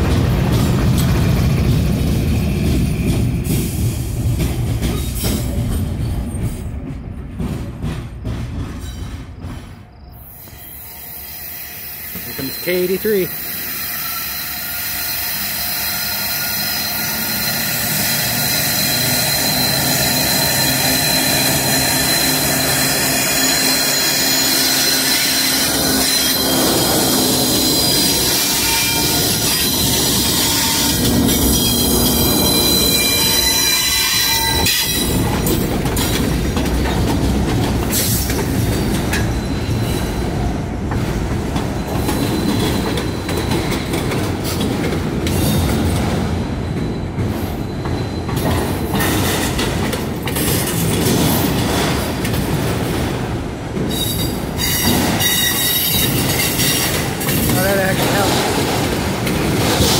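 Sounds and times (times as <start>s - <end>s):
train wheels rumbling: 0.0s - 59.9s
wheel flanges squealing: 9.9s - 36.2s
wheels clicking over rail joints: 27.8s - 39.9s.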